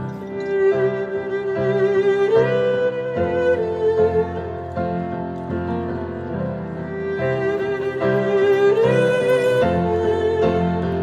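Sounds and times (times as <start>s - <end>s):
piano accompaniment: 0.0s - 11.0s
violin melody with vibrato: 0.0s - 11.0s.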